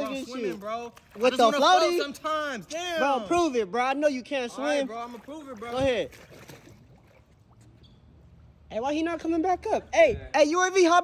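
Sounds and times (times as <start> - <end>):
pool water sloshing: 0.0 - 9.8.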